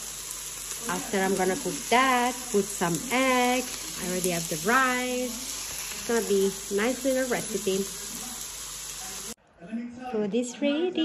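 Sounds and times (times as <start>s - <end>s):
chicken sizzling in a frying pan: 0.0s - 9.4s.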